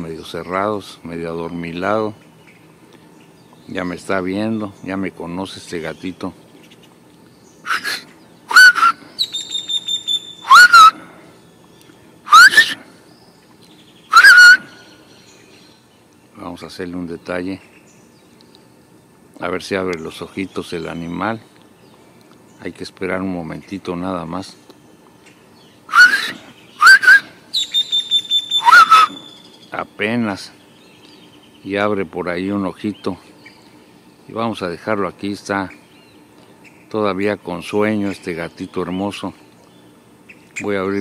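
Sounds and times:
high bird trill: 0:00.0 - 0:18.9, 0:19.7 - 0:41.0
birds chirping: 0:00.0 - 0:41.0
bird calls rising in pitch: 0:07.5 - 0:15.8, 0:25.7 - 0:30.0
thin high whistle: 0:07.6 - 0:11.0, 0:12.3 - 0:12.8, 0:14.1 - 0:14.8, 0:25.9 - 0:29.4.

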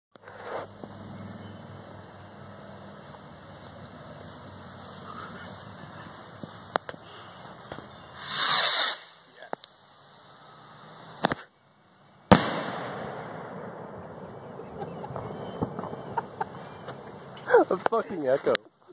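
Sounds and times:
firecracker fuse hissing: 0:05.4 - 0:11.5
firecracker bangs: 0:08.2 - 0:09.2, 0:12.3 - 0:16.0
rolling echo: 0:12.3 - 0:17.5.

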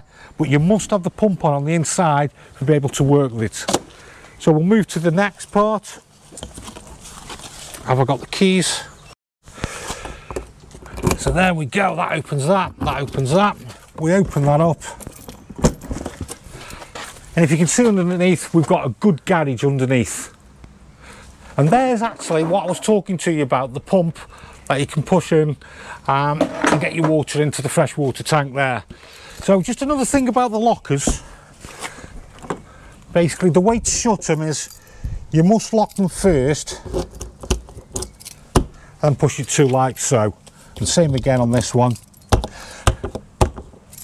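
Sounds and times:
key turning in lock: 0:36.9 - 0:38.5
keys jangling: 0:37.9 - 0:38.5, 0:41.4 - 0:42.5.

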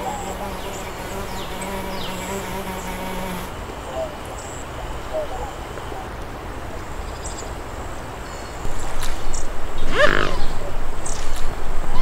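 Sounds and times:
fly buzzing: 0:00.0 - 0:03.6, 0:09.9 - 0:10.5.

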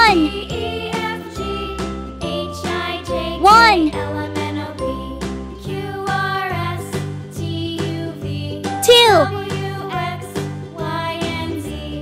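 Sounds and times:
children's background music: 0:00.0 - 0:12.0.

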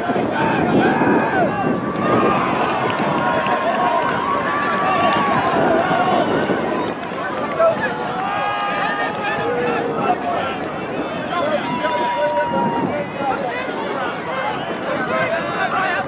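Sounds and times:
players shouting and calling out: 0:00.0 - 0:16.0.

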